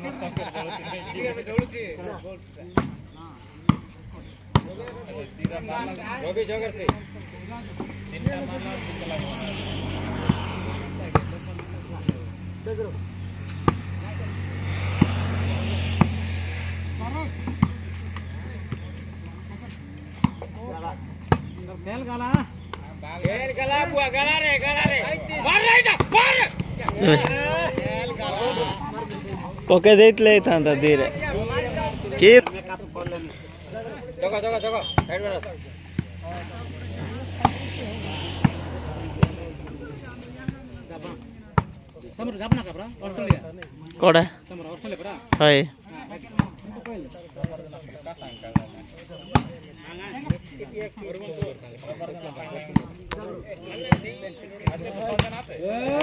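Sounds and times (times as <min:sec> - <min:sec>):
hands slapping volleyball: 0:02.7 - 0:03.0, 0:04.5 - 0:05.6, 0:13.5 - 0:14.0, 0:15.9 - 0:16.3, 0:17.4 - 0:19.3, 0:20.1 - 0:20.6, 0:21.2 - 0:21.6, 0:22.3 - 0:23.4, 0:25.9 - 0:28.0, 0:32.4 - 0:33.2, 0:34.9 - 0:37.7, 0:40.3 - 0:43.8, 0:49.3 - 0:49.6, 0:52.7 - 0:56.0
players shouting: 0:23.2 - 0:33.0.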